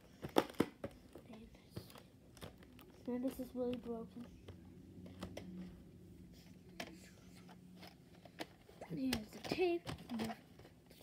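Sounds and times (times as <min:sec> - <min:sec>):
plastic clicks and knocks: 0:00.2 - 0:02.9, 0:07.8 - 0:10.7.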